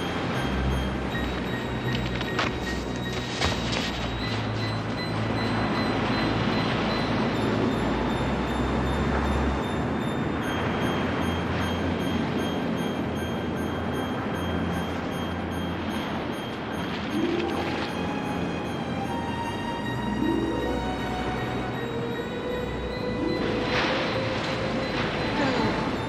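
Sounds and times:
quiet orchestral music: 0.0 - 26.0
ocean surf breaking on beach: 22.7 - 26.0.

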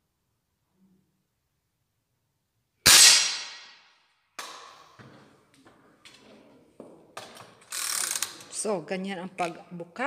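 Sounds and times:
air rifle shot: 2.9 - 3.9.

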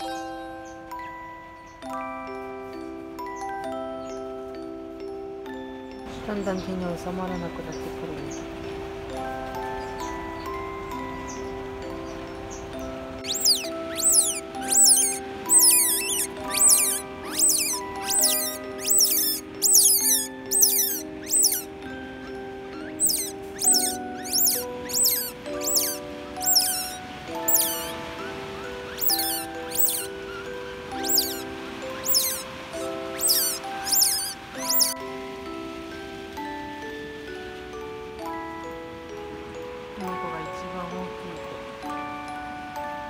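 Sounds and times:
soft background music: 0.0 - 43.0
otter pups squeaking: 13.2 - 35.0.

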